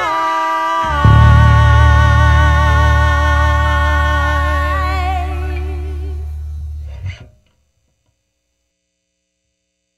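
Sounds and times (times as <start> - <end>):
electric bass note: 0.9 - 7.2
faint hum: 0.9 - 7.2.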